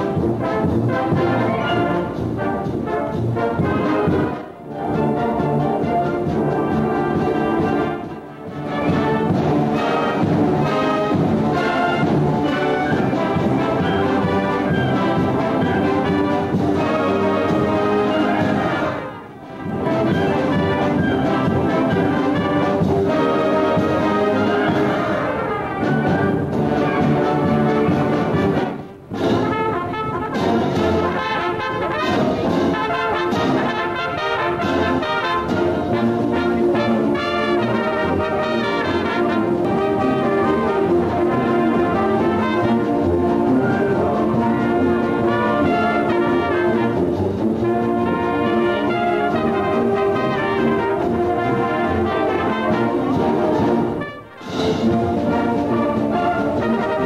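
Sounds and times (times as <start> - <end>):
concert band playing: 0.0 - 57.0.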